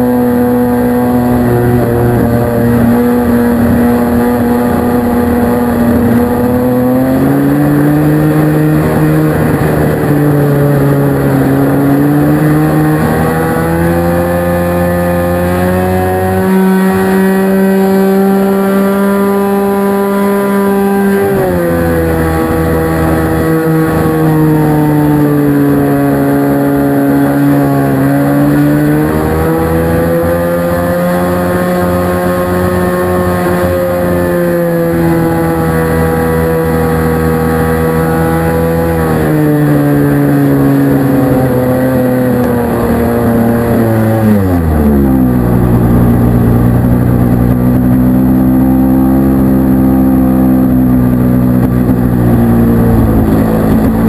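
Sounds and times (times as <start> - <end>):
model plane engine and propeller: 0.0 - 54.0.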